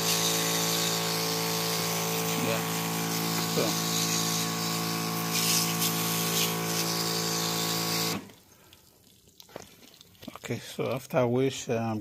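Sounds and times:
water spray hissing: 0.0 - 8.4
pressure washer pump hum: 0.0 - 8.7.

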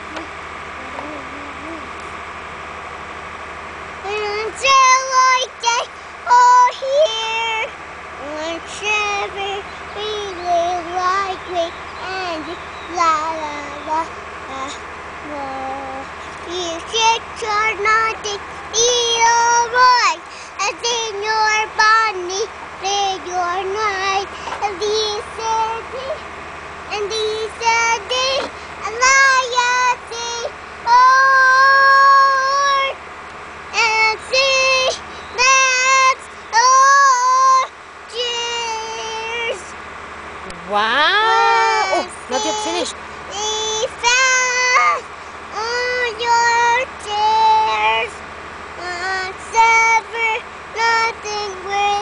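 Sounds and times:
girl singing in a high voice: 4.0 - 26.2, 26.9 - 33.0, 33.7 - 39.7, 41.0 - 48.2, 48.8 - 52.0.

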